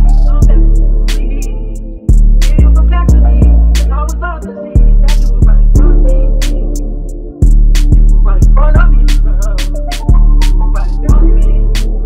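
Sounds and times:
deep bass notes: 0.0 - 12.0
hi-hats and drum hits: 0.0 - 12.0.

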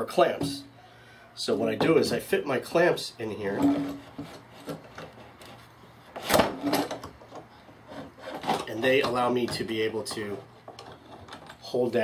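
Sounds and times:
clamp rubbing and handling: 3.4 - 9.3, 10.1 - 11.7.

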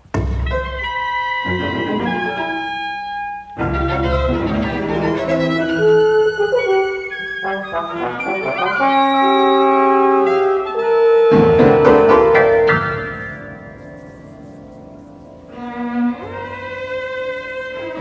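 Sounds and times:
chamber ensemble playing: 0.6 - 18.0.

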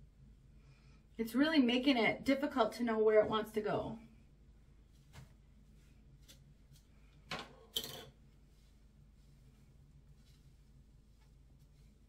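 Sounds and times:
fingers rustling through wig: 8.2 - 12.0.

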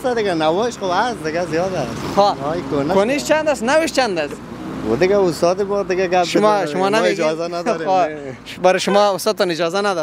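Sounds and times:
car traffic on street: 0.0 - 10.0
men talking: 0.0 - 10.0.

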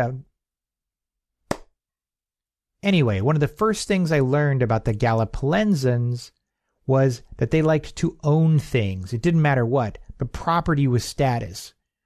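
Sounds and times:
man narrating: 0.0 - 0.3, 2.8 - 11.8.

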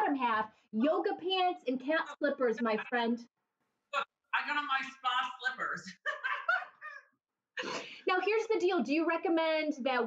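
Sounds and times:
woman squealing laughter: 6.0 - 7.0.

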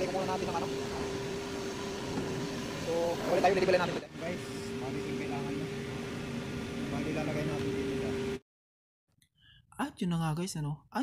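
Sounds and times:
mid-pitched industrial drone: 0.0 - 8.4.

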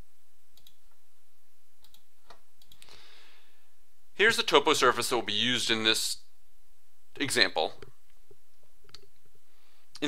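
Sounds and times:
faint low hum: 0.0 - 10.0
computer mouse clicking: 0.6 - 0.8, 1.8 - 2.9.

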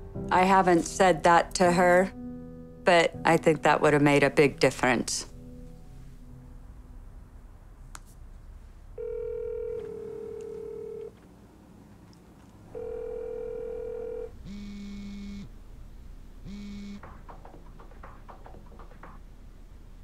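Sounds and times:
mobile phone buzzing: 9.0 - 11.1, 12.8 - 15.5, 16.5 - 17.0.

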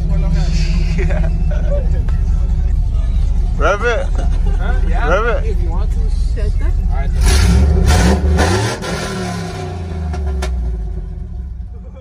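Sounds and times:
pickup truck engine revving: 0.0 - 11.8.

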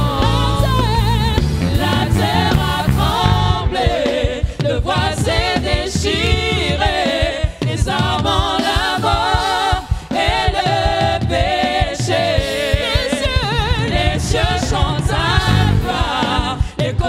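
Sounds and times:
drum and bass beat: 0.0 - 17.0
voices singing with vibrato: 0.0 - 17.0.

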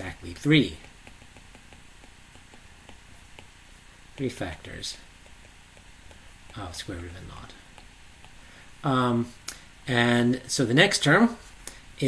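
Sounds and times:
low room hiss: 0.0 - 12.0
stylus ticking on screen: 0.3 - 6.9.

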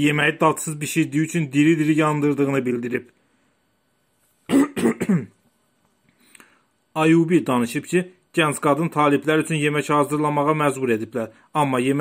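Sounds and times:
person clearing throat: 4.5 - 5.4.

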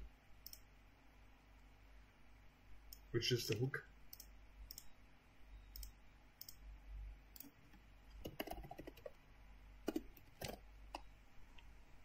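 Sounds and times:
mouse clicks: 0.4 - 0.7, 2.9 - 4.9, 5.7 - 6.6.

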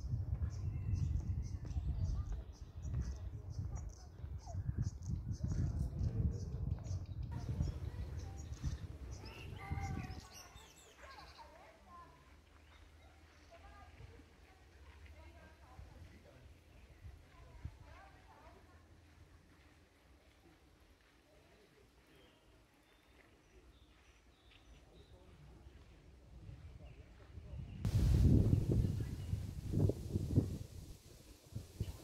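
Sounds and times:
faint people's voices: 0.0 - 32.0
low microphone rumble: 5.2 - 10.2, 27.5 - 32.0.

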